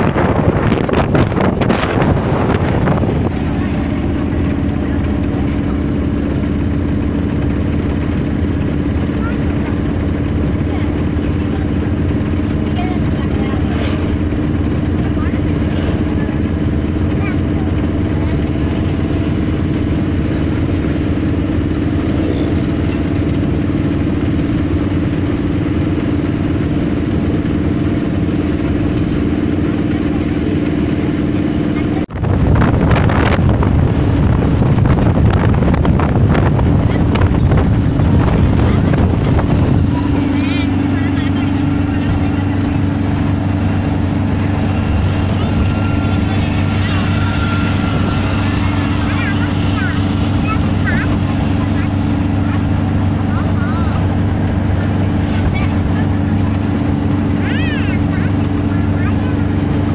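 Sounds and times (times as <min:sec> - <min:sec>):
vehicle engine drone and road noise: 0:00.0 - 0:59.9
wind buffeting microphone: 0:00.0 - 0:59.9.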